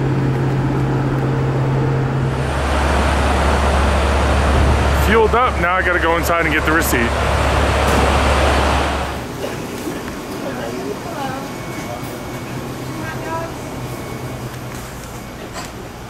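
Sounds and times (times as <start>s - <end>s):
steady electrical hum: 0.0s - 16.0s
truck engines idling: 0.0s - 16.0s.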